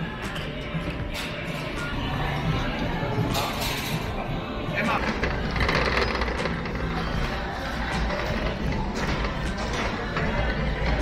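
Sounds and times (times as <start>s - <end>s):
busy room noise: 0.0s - 11.0s.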